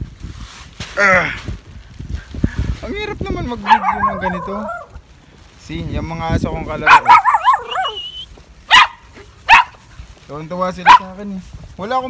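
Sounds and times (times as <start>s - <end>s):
small dogs barking: 3.6s - 5.0s, 6.8s - 9.9s, 10.8s - 11.2s.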